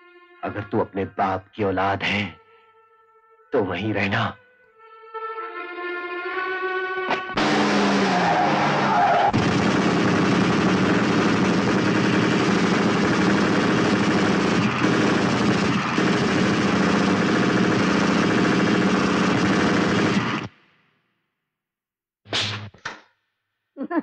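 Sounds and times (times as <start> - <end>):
automatic gunfire: 7.4 - 20.5.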